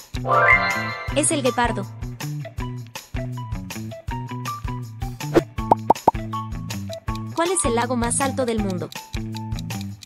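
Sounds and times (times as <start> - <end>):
upbeat background music: 0.0 - 10.0
short popping blips: 5.4 - 6.2.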